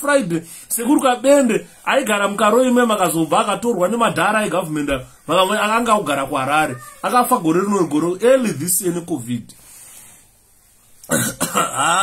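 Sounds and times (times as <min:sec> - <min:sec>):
man speaking: 0:00.0 - 0:09.6
man clearing throat: 0:11.1 - 0:12.0.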